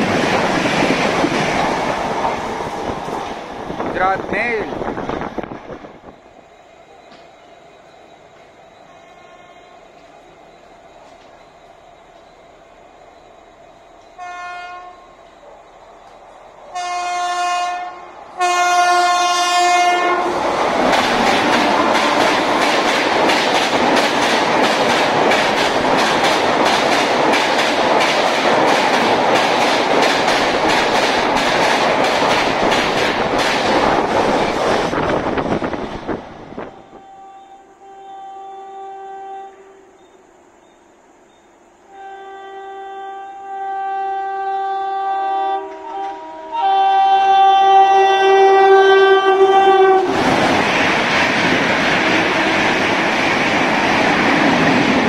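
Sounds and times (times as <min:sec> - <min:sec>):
train rushing past: 0:00.0 - 0:38.0, 0:43.6 - 0:55.0
locomotive horn blasts: 0:08.9 - 0:09.7, 0:14.2 - 0:15.1, 0:16.7 - 0:20.4, 0:36.7 - 0:40.0, 0:41.9 - 0:50.1
wheels clacking over rail joints: 0:20.5 - 0:34.9.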